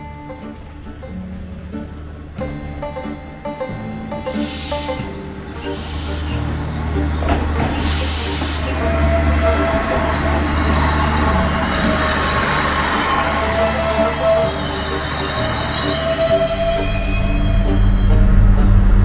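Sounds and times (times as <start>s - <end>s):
train rumbling past: 0.0s - 19.0s.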